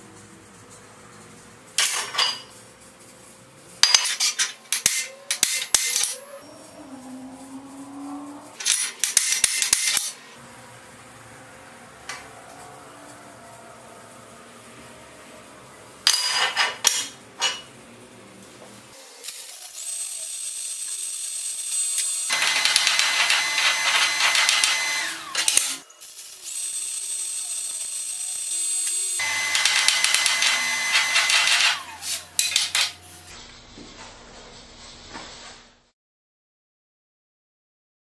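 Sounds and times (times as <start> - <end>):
welding arc crackling: 19.0 - 33.4.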